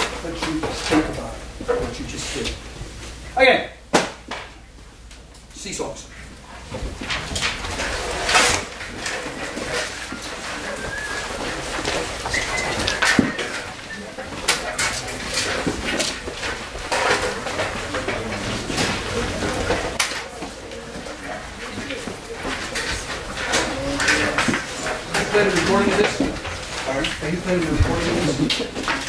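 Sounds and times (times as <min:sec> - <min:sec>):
sheet music rustling: 0:00.0 - 0:29.0
students talking: 0:07.8 - 0:29.0.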